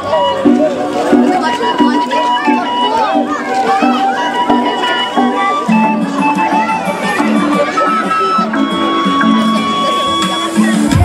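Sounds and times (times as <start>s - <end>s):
pulsing backing accompaniment: 0.0s - 11.0s
wooden flute melody: 0.0s - 11.0s.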